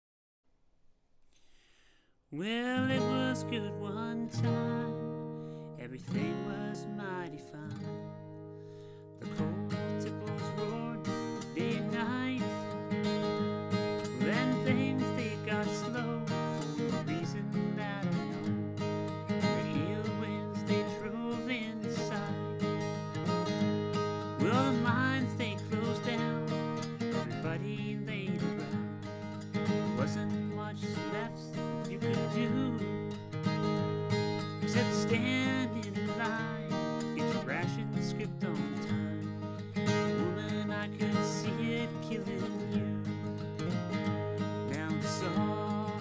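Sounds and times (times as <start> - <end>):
acoustic guitar strummed: 2.4 - 46.0.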